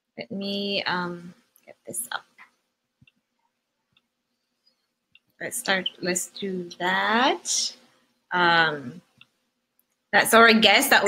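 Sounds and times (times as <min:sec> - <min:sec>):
woman speaking: 0:00.2 - 0:02.4, 0:05.4 - 0:09.0, 0:10.2 - 0:11.0.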